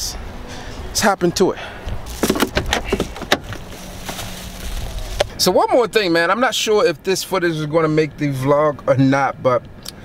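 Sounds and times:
steady low rumble: 1.7 - 7.1.

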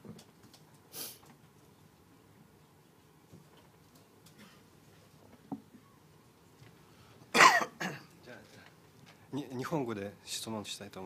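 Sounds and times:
person coughing: 7.3 - 8.1.

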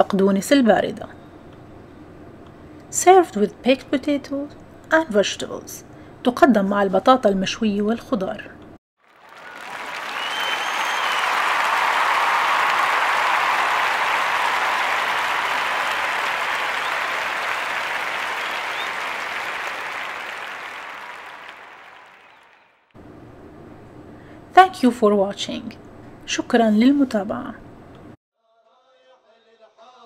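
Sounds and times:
crowd applause: 9.0 - 22.9
whistle: 9.4 - 11.8, 14.5 - 19.9.

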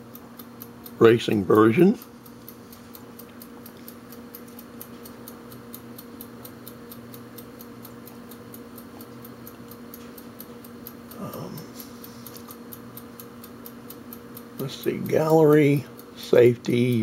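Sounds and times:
fast sharp ticking: 0.0 - 17.0
low even hum: 0.0 - 17.0.

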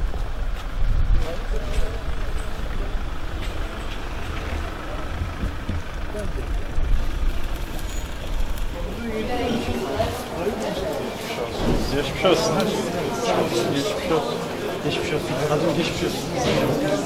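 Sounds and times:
wind buffeting microphone: 0.0 - 10.2
vehicle engine and tyres rumbling: 0.0 - 17.0
faint voices: 1.0 - 17.0.

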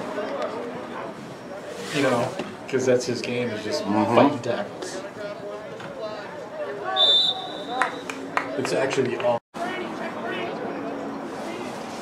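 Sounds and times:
spectators' voices: 0.0 - 12.0
referee's whistle blast: 7.0 - 8.1.

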